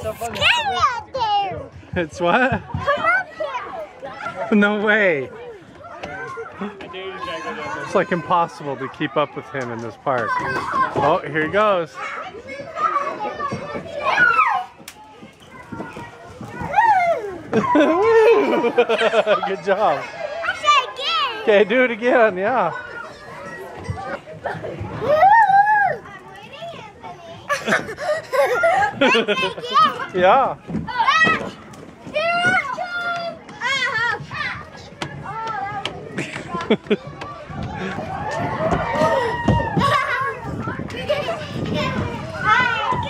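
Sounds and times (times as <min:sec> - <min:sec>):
children's voices: 0:00.0 - 0:43.0.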